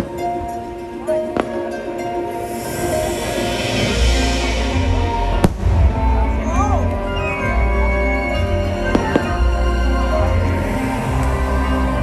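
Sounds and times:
show music with heavy bass: 1.9 - 12.0.

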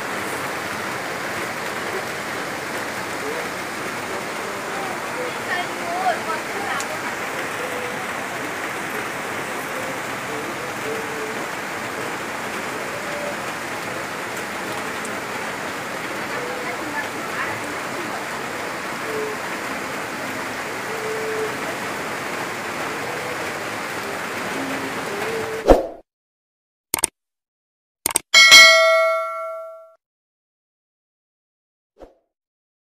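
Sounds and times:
heavy rain pouring: 0.0 - 25.6.

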